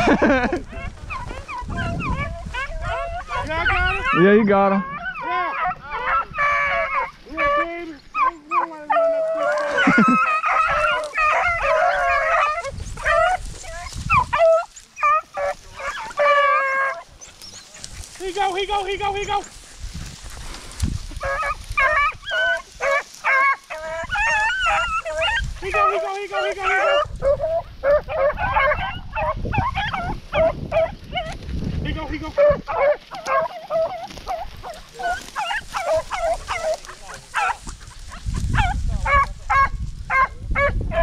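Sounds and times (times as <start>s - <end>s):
dogs baying and yelping: 0.0s - 41.0s.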